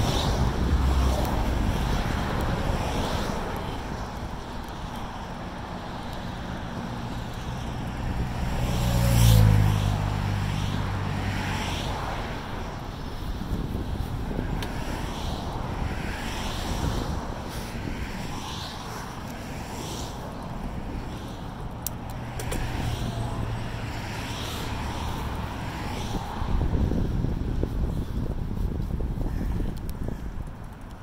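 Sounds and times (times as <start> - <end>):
wind noise on microphone: 0.0 - 31.0
vehicle engine passing by: 8.1 - 11.9.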